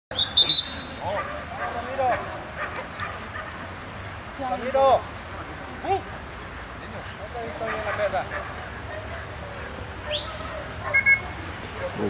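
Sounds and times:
dogs yipping and whining: 10.0s - 12.0s.

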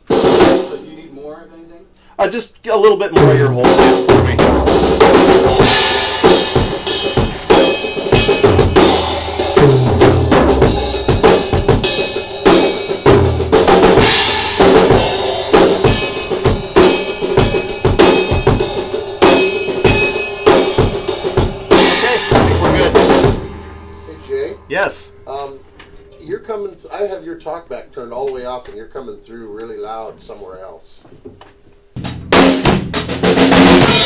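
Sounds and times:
drum kit playing: 0.0s - 1.4s, 2.0s - 30.1s, 31.9s - 34.0s.

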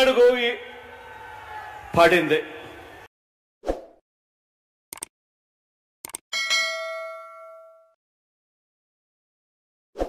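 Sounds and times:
bright bell ding: 6.3s - 8.0s.

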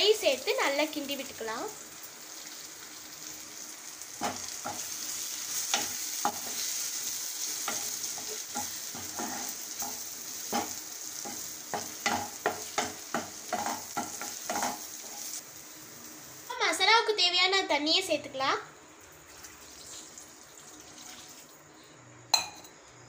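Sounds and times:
spices sizzling in oil: 0.0s - 18.2s, 18.8s - 22.6s
wooden spatula scraping pan: 7.6s - 15.4s.

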